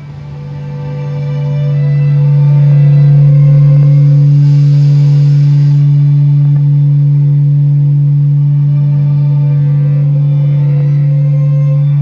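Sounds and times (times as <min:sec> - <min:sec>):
string orchestra holding low note: 0:00.0 - 0:12.0.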